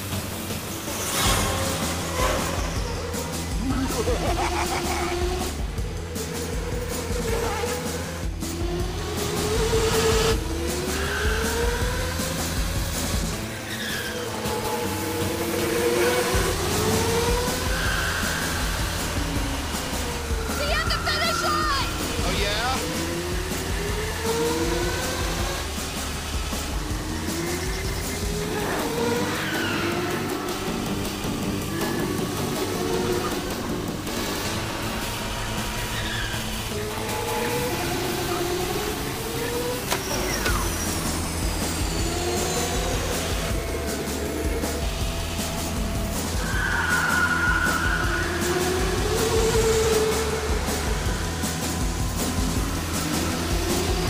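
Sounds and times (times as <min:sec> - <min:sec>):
background music: 0:00.0 - 0:54.0
go-kart motors revving: 0:00.0 - 0:54.0.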